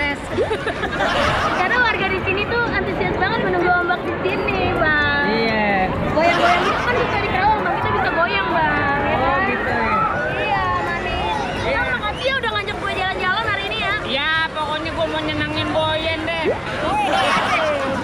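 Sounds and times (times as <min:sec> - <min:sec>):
crowd chatter: 0:00.0 - 0:18.0
voices talking and calling out: 0:00.0 - 0:18.0.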